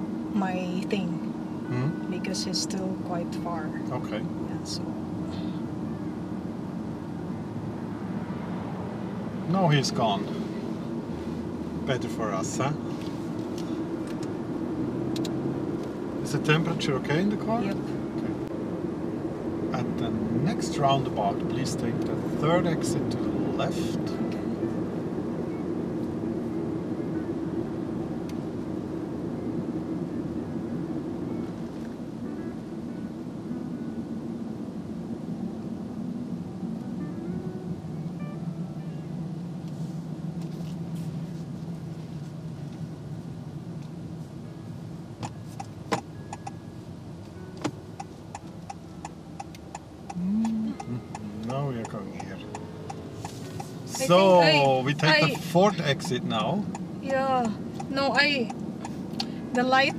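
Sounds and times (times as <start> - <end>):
car cabin road and engine noise: 0.0 - 59.9
turn signal ticking: 12.4 - 18.5, 45.1 - 59.9.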